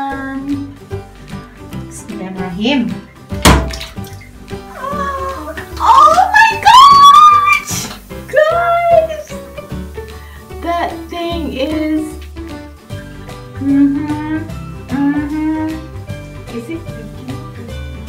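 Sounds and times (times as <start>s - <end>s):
background music with singing: 0.0s - 6.5s, 7.3s - 18.0s
bath bomb splashing into water: 3.3s - 8.2s.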